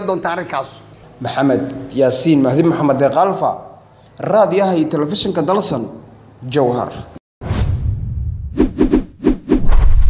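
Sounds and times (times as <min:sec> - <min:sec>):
low rumble: 0:07.4 - 0:08.7
whoosh: 0:07.4 - 0:10.0.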